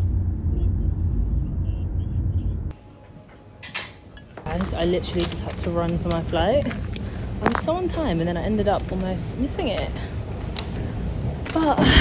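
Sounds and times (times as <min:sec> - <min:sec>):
car cabin road rumble: 0:00.0 - 0:02.8, 0:04.4 - 0:12.0.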